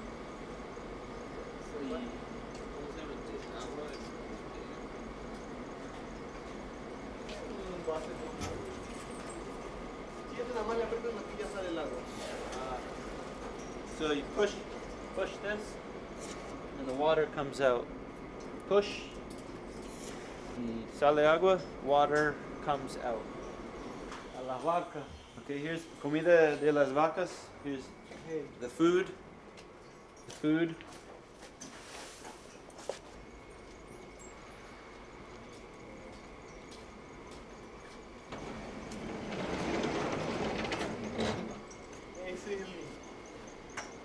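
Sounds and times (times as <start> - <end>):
low barn background: 23.8 - 44.0
sliding barn door rumbling: 38.3 - 41.7.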